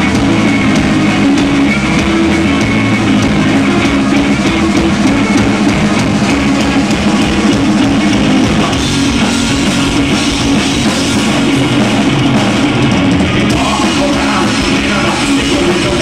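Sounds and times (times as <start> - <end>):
drum kit: 0.0 - 16.0
electric bass: 0.0 - 16.0
electric guitar: 0.0 - 16.0.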